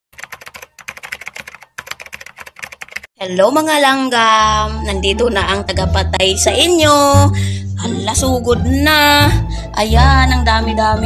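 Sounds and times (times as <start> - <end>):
keyboard typing clicks: 0.2 - 3.1.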